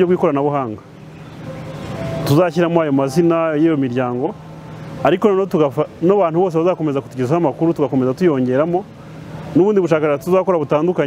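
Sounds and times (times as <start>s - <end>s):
person speaking: 2.2s - 4.4s.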